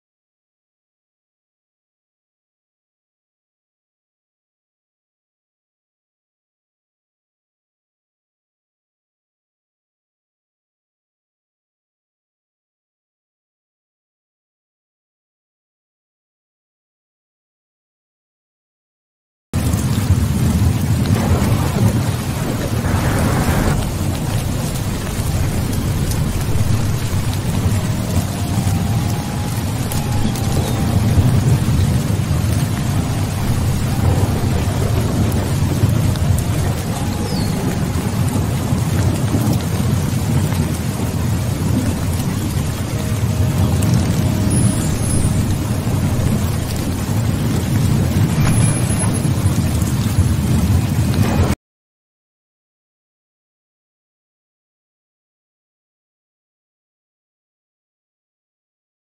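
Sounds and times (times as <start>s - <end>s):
low rumble of thunder: 19.6s - 51.6s
steady rainfall: 19.6s - 51.6s.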